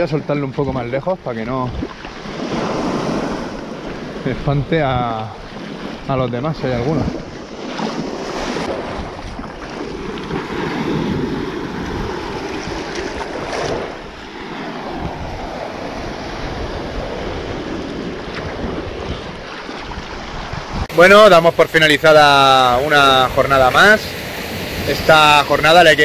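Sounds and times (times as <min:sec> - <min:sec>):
wind buffeting microphone: 0:00.0 - 0:21.0
small waves breaking on sand: 0:01.7 - 0:26.0.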